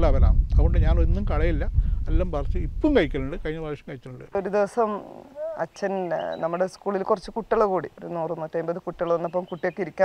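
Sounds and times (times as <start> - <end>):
woman speaking with creaky voice: 4.4 - 6.5.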